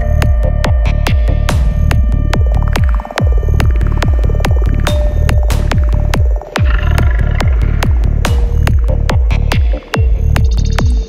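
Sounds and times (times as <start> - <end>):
kick drum: 0.0 - 11.0
rolling bassline: 0.0 - 11.0
held synth tone: 4.7 - 8.5.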